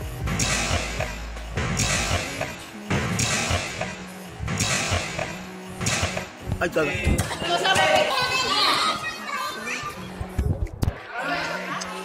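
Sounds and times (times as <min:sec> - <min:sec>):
teenagers calling out and chattering: 0:07.2 - 0:12.0.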